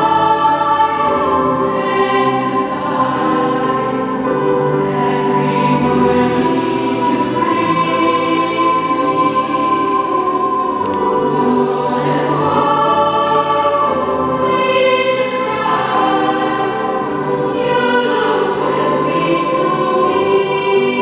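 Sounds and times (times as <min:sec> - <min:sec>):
treble choir singing: 0:00.0 - 0:21.0.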